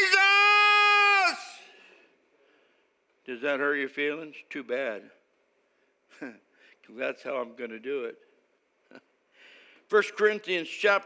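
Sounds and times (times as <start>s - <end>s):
man screaming: 0.0s - 1.8s
room echo: 0.0s - 11.0s.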